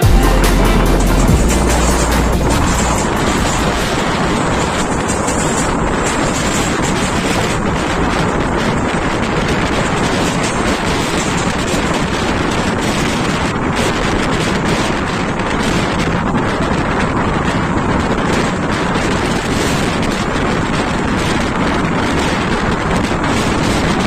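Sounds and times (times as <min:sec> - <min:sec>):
train running noise: 0:00.0 - 0:24.0
wind buffeting microphone: 0:03.0 - 0:24.0.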